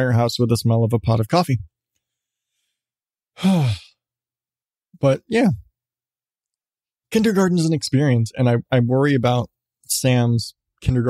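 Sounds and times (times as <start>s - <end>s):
man sighing: 3.4s - 4.0s.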